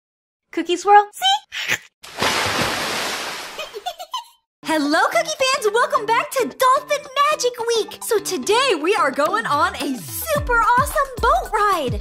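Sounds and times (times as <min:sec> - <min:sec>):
water rushing and splashing: 0:02.1 - 0:03.6.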